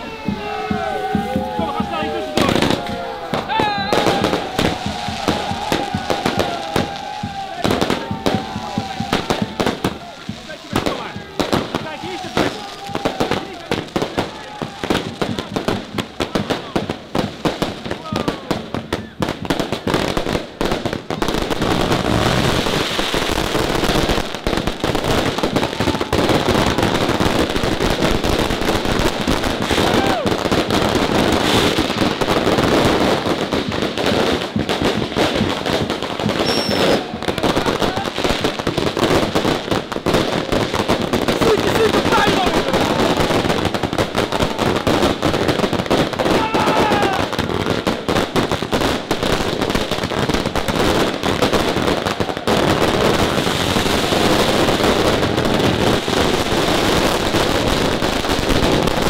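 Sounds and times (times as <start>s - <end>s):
crowd shouting: 0.0s - 59.0s
fireworks bangs and crackle: 0.0s - 59.0s.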